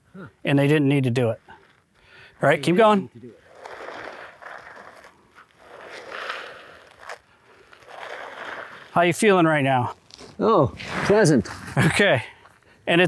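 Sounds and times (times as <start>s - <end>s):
clothing scraping over sandy dirt: 1.2s - 12.1s.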